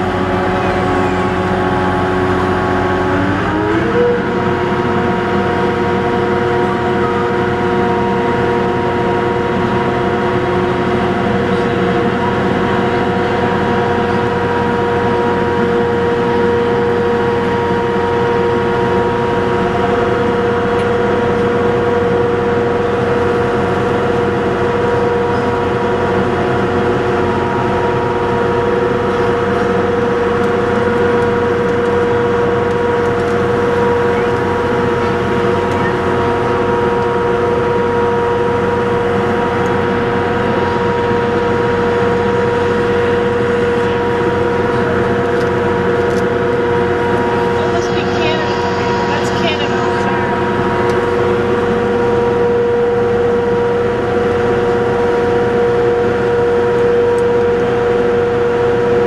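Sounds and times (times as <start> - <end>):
boat motor droning: 0.0 - 59.0.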